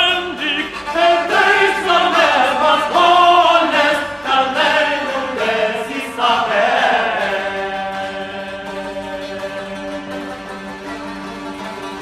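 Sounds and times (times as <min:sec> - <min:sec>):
men singing chanted melody: 0:00.0 - 0:10.8.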